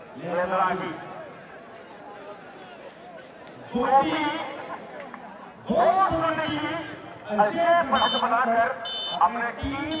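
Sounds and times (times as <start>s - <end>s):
man commentating: 5.6s - 10.0s.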